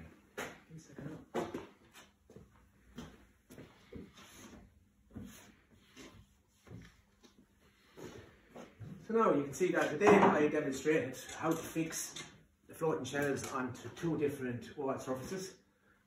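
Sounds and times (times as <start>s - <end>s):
footsteps on hard floor: 0.4s - 9.0s.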